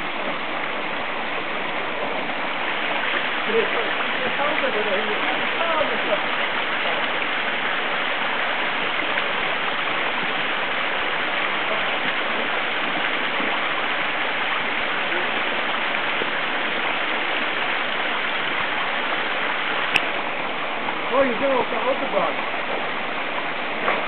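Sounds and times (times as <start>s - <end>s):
stream rushing over rocks: 0.0s - 24.0s.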